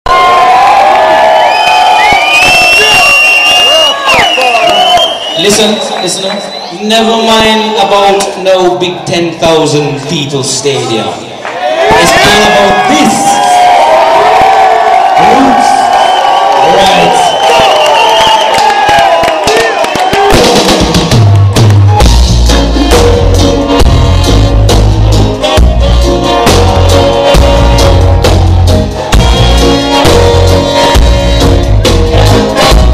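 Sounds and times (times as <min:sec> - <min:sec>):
crowd cheering and shouting: 0:00.1 - 0:09.4, 0:10.5 - 0:32.9
drum kit hits: 0:20.1 - 0:32.9
bass guitar notes: 0:20.9 - 0:32.9.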